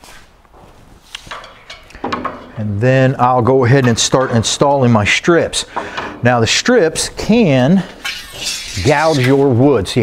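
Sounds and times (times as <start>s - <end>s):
quiet footsteps: 0.0s - 1.5s.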